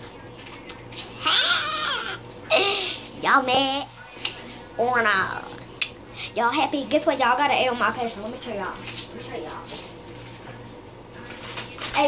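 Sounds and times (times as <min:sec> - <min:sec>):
child squealing: 0:01.2 - 0:02.2.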